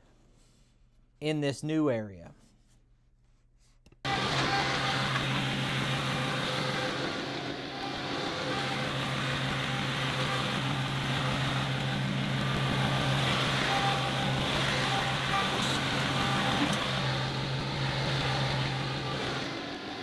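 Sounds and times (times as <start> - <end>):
tractor diesel engine running: 4.1 - 20.0.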